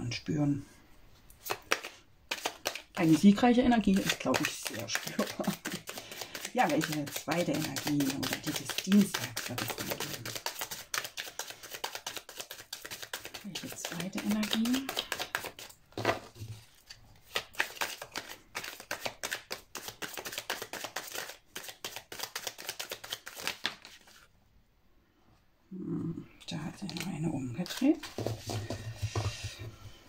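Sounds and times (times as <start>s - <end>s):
cards being shuffled: 1.4s - 24.3s, 26.8s - 29.7s.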